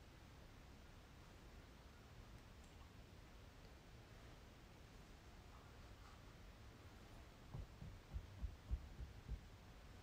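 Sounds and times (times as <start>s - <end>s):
dull low thumps: 7.5s - 9.6s.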